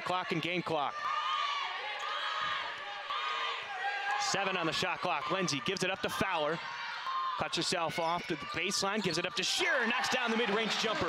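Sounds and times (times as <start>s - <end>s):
crowd and player voices: 0.0s - 11.0s.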